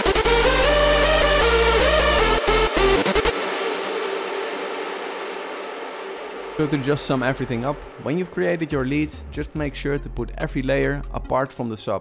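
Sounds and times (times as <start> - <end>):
dance music synth lead: 0.0 - 9.7
heavy sub bass: 0.0 - 11.1.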